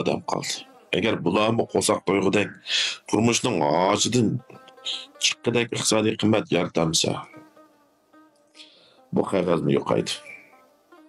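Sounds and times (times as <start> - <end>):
person speaking: 0.0 - 7.4, 9.1 - 10.5
faint background music: 0.0 - 11.0.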